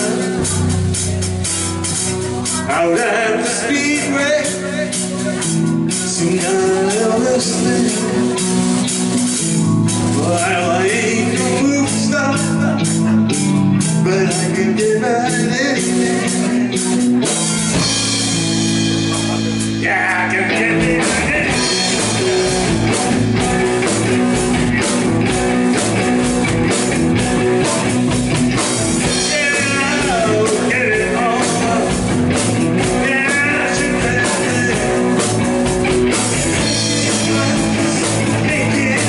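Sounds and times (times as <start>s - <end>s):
drums keeping steady beat: 0.0s - 39.0s
live rock band playing: 0.0s - 39.0s.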